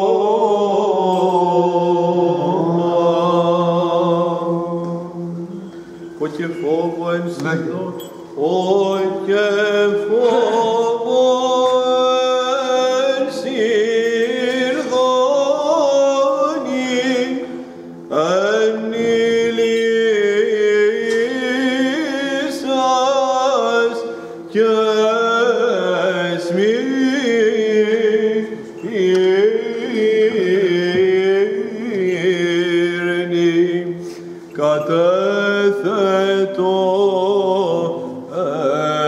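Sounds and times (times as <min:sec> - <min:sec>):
man singing chant: 0:00.0 - 0:39.0.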